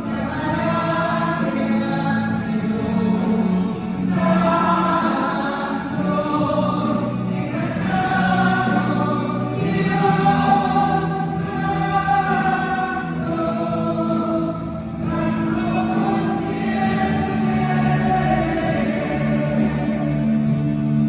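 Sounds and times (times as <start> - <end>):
group singing worship music: 0.0 - 21.0.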